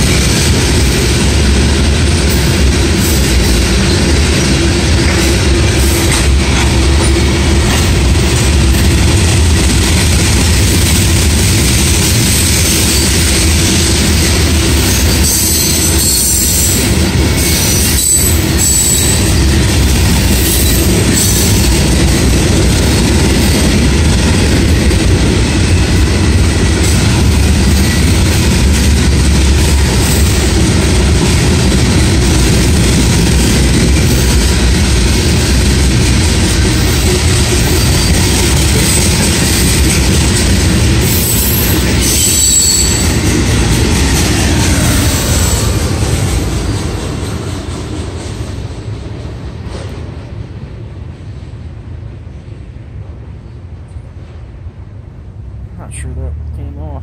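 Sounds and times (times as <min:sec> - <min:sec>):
freight train wheels rumbling on rail: 0:00.0 - 0:57.0
high-pitched wheel squeal: 0:17.4 - 0:19.4, 0:41.1 - 0:43.2.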